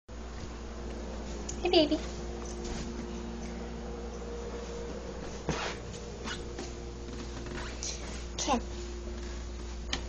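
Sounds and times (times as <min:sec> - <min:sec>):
steady low hum: 0:00.1 - 0:10.0.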